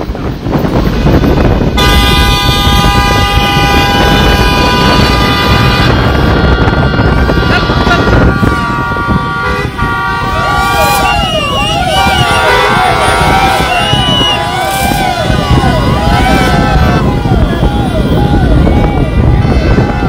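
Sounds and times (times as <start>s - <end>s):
traffic: 0.0s - 20.0s
wind: 0.0s - 20.0s
vehicle horns honking: 1.7s - 20.0s
siren-type horns rising and falling: 1.8s - 20.0s.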